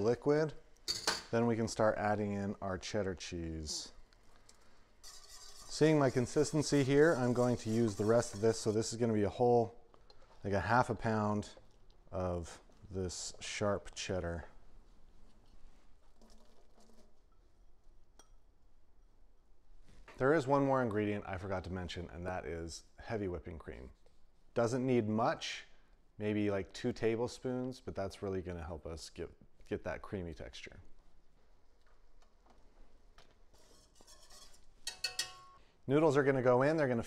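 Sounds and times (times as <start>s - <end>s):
soft rustling in a bowl: 4.0s - 9.2s, 30.9s - 35.0s
ceramic bowl clink: 34.1s - 35.6s.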